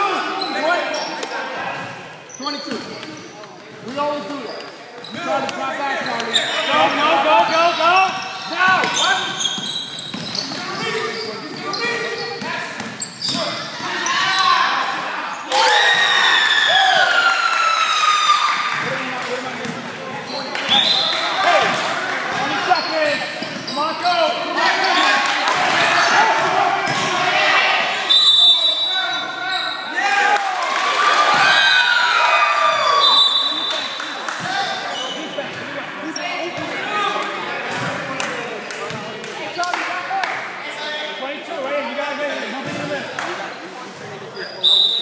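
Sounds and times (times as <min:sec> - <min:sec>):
sneaker squeaks: 0:00.2 - 0:14.7, 0:19.6 - 0:21.3, 0:22.3 - 0:25.1, 0:28.1 - 0:30.0, 0:32.9 - 0:36.8, 0:44.0 - 0:45.0.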